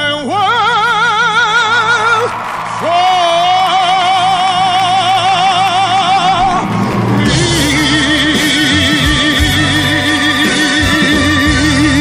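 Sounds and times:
man singing long note: 0.0s - 12.0s
backing track: 0.6s - 12.0s.

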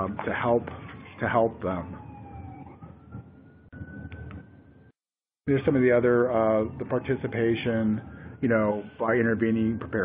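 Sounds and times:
faint siren wailing: 0.0s - 10.0s.

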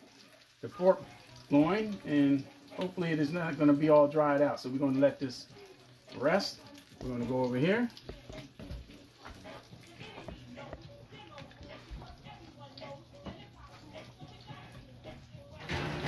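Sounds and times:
background music: 0.0s - 16.0s.

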